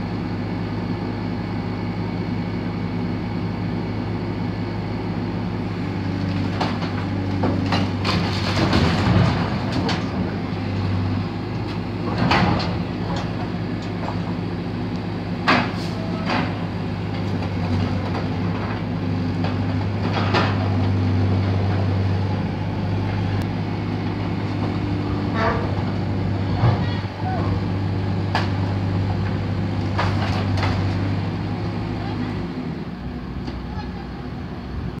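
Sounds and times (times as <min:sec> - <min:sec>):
loader engine running: 0:00.0 - 0:35.0.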